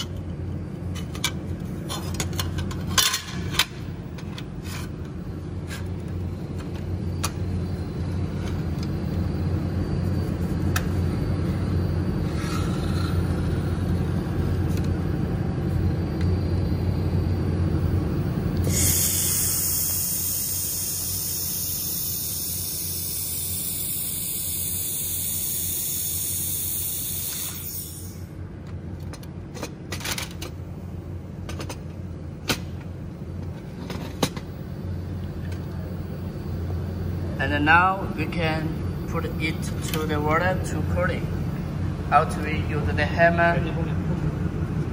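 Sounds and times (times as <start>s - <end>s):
steady low hum: 0.0s - 44.9s
welding torch hissing: 18.6s - 28.3s.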